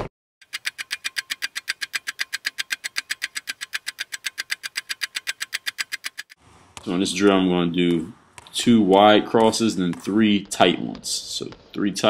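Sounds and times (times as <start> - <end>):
rapid even ticking: 0.4 - 6.4, 7.8 - 12.0.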